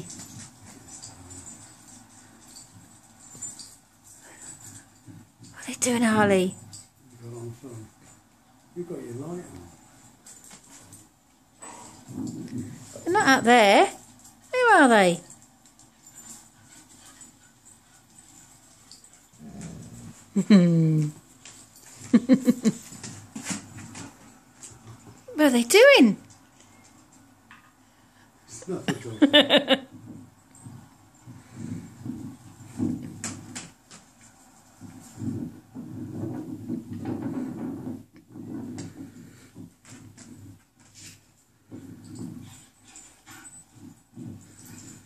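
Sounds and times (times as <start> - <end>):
dog grumbling: 19.4 - 20.3.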